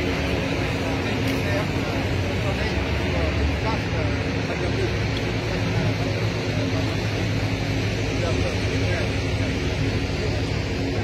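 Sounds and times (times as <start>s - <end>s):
low engine hum: 0.0s - 11.0s
people talking: 0.0s - 11.0s.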